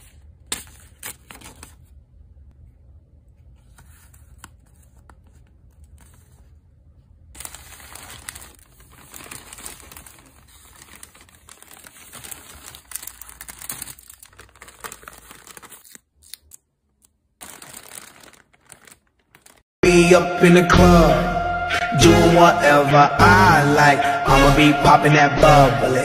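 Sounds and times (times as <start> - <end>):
paper inserts rustling: 0.0 - 2.0, 3.4 - 6.6, 7.4 - 19.7
plastic mailer bag crinkling: 0.6 - 1.9, 7.4 - 19.7.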